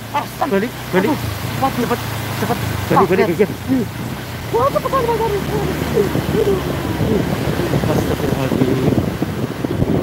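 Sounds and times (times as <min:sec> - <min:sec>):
motorcycle engine running: 0:00.0 - 0:10.0
wind buffeting microphone: 0:00.0 - 0:10.0
man calling out: 0:00.2 - 0:03.9.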